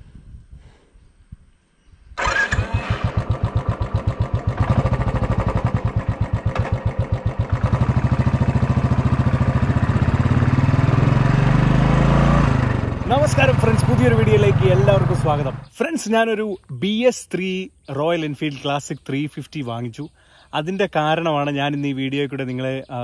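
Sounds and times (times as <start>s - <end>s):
motorcycle engine starting and thumping: 2.2s - 15.7s.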